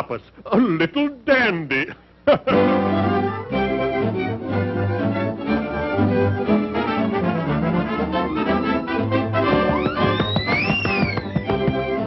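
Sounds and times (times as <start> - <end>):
orchestral cartoon music with brass: 2.5 - 10.1.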